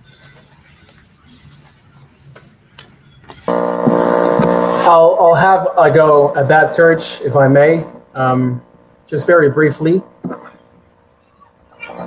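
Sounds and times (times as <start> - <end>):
man's drawn-out hesitation sound: 3.8 - 10.4.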